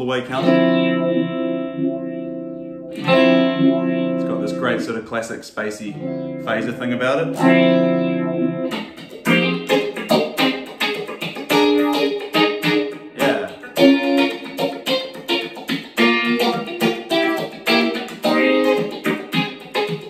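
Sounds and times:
electric guitar with phaser: 0.0s - 5.0s, 5.9s - 20.0s.

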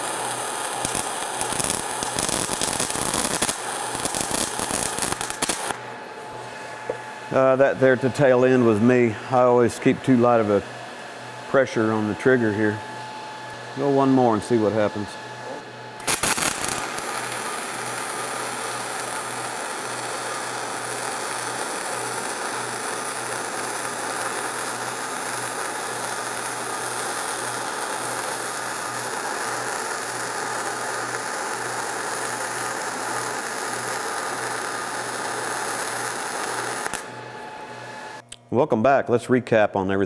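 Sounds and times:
arc striking crackle: 0.0s - 5.9s, 16.0s - 37.2s
welding arc hissing: 0.0s - 10.6s, 13.8s - 38.2s.

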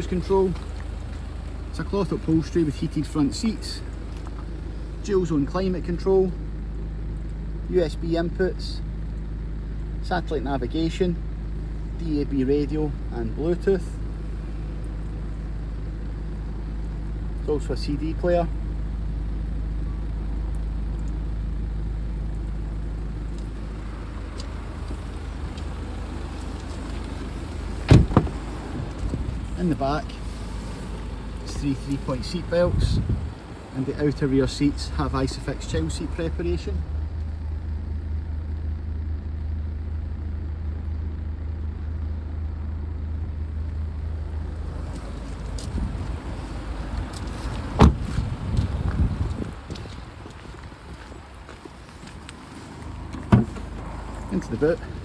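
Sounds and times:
low rumble inside car: 0.0s - 55.0s
car door shutting: 26.8s - 28.5s, 47.6s - 48.3s, 53.1s - 53.9s
car door shutting thump: 27.8s - 28.4s, 47.8s - 48.2s, 53.1s - 53.7s
rustling of someone climbing out: 47.0s - 54.3s.

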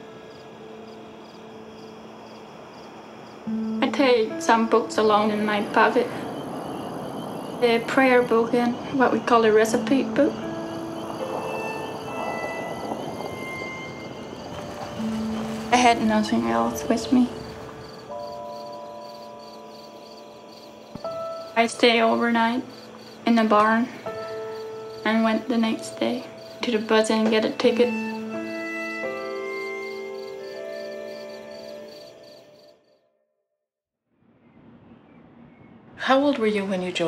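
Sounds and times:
low background music: 0.0s - 32.6s
cricket chirping: 0.0s - 33.0s.

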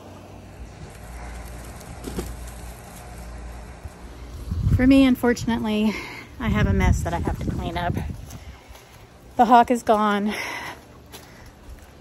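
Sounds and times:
wind rumble on microphone: 3.8s - 8.7s.

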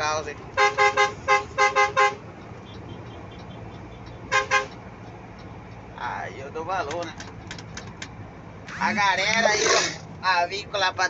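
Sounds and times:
engine hum from inside cab: 0.0s - 11.0s
truck horn toots: 0.6s - 3.5s, 4.3s - 4.8s.

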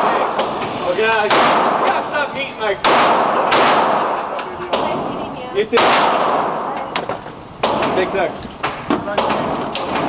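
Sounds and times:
pistol shots echoing indoors: 0.0s - 10.0s.

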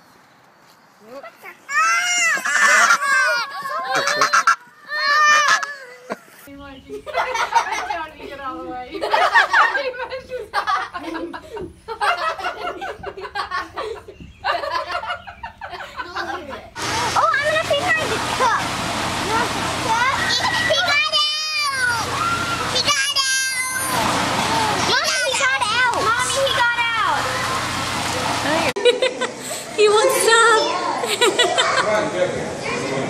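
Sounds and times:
young child's voice: 1.2s - 4.0s, 22.7s - 24.0s, 24.6s - 27.2s
young child crying: 1.7s - 4.1s, 4.8s - 6.3s
goose honking: 3.9s - 4.6s.

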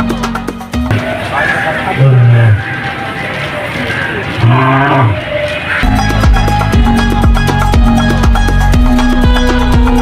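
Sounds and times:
lion grunting: 4.0s - 5.3s.

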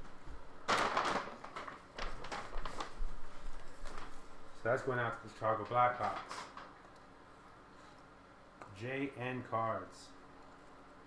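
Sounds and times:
fabric rustling: 0.7s - 4.6s.

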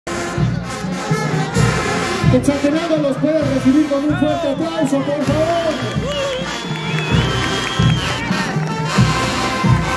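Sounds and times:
crowd noise: 0.1s - 9.9s
marching band music: 0.1s - 9.9s.

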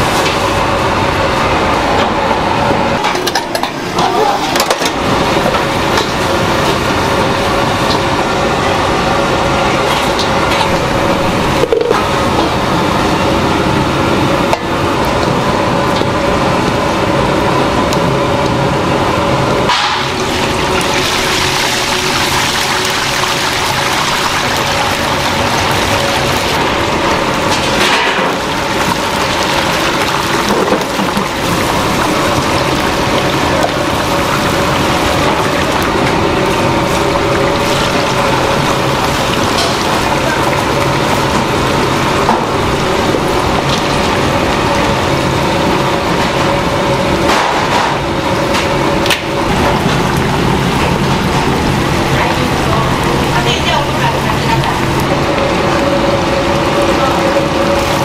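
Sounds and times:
chicken deep-frying sizzle: 3.1s - 17.7s, 18.4s - 58.0s.

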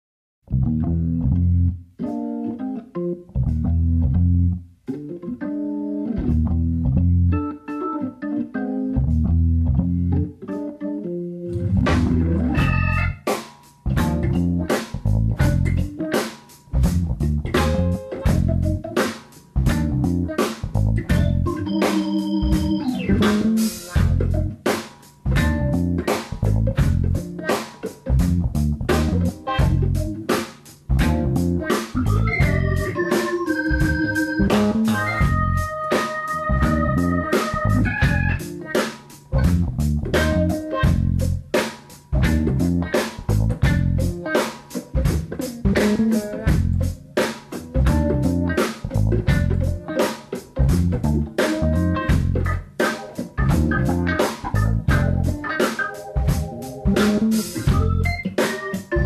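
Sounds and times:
instrumental funk with organ: 0.6s - 59.0s.

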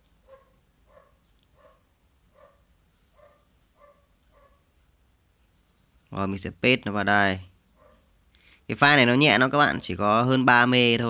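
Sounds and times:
faint animal calls: 0.0s - 5.0s, 7.6s - 8.6s.

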